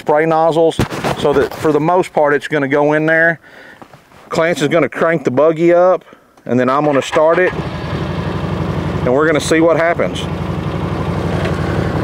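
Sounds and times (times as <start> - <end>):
vehicle engine idling: 6.9 - 12.0.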